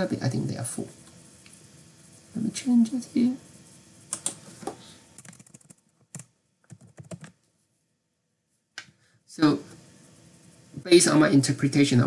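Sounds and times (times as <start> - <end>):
computer keyboard keystrokes: 4.1 - 4.4, 5.2 - 7.4.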